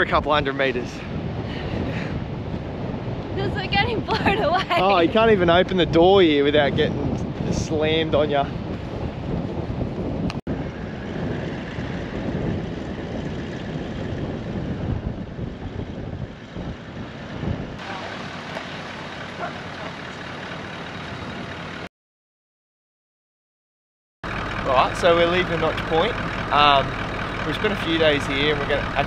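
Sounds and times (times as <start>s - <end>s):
gusty wind on microphone: 0.0s - 19.6s.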